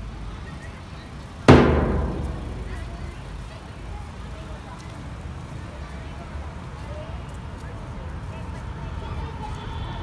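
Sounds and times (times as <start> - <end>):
bass drum boom: 1.5 - 3.2.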